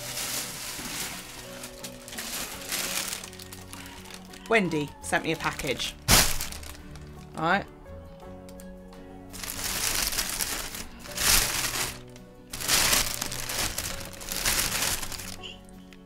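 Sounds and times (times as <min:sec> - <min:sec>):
plastic bag crinkling: 0:00.0 - 0:05.0, 0:06.1 - 0:07.2, 0:09.4 - 0:15.5
faint background music: 0:00.0 - 0:16.0.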